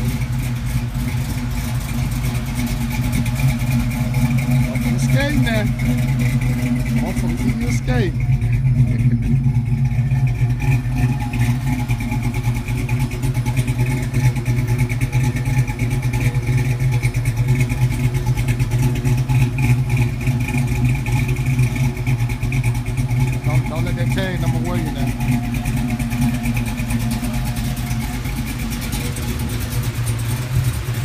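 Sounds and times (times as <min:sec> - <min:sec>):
car engine idling: 0:00.0 - 0:31.0.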